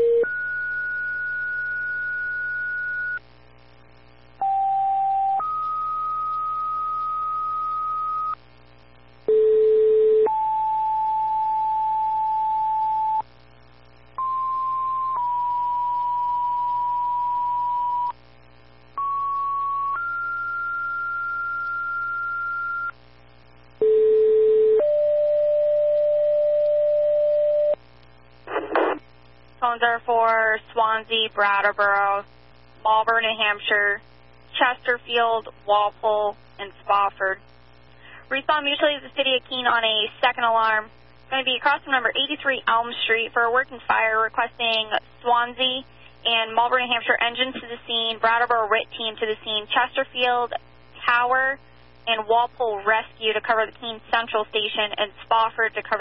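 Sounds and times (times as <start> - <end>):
two-tone paging tones: 4.4 - 8.4, 14.2 - 18.1
radio noise burst: 28.4 - 29.2.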